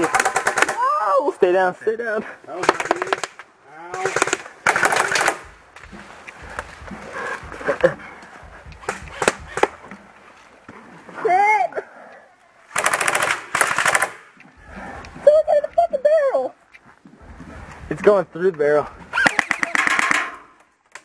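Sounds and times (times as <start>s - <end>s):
airsoft rifle shots: 0.0s - 0.8s, 2.6s - 3.4s, 4.0s - 7.5s, 8.4s - 9.9s, 12.7s - 14.3s, 19.2s - 20.5s.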